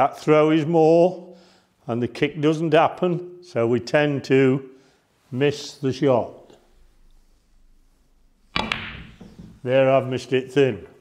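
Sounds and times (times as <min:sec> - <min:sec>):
cue striking ball: 0:08.5 - 0:09.6
snooker balls clicking: 0:08.5 - 0:09.6.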